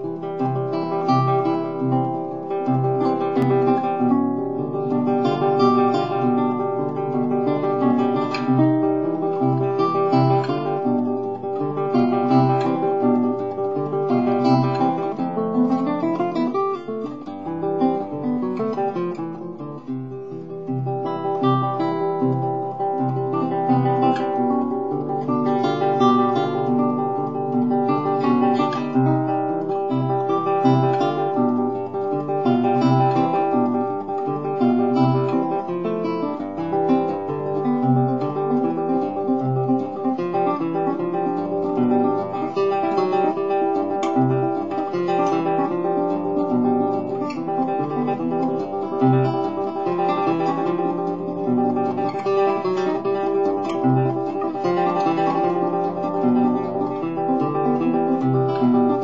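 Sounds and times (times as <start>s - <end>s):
solo classical guitar: 0.0s - 59.0s.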